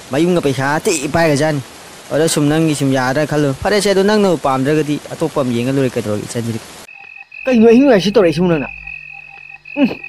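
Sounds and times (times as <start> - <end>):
croaking call: 6.9 - 10.0
steady high-pitched tone: 6.9 - 10.0.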